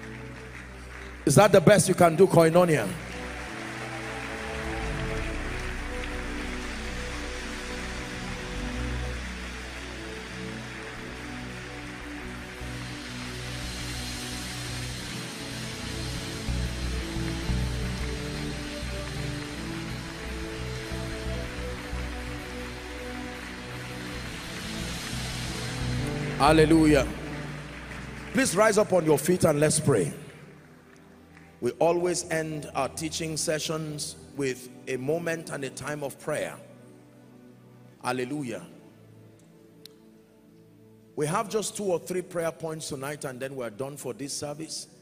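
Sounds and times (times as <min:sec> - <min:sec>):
crowd applauding and cheering: 0:00.0 - 0:32.2
soft church music: 0:00.0 - 0:45.0.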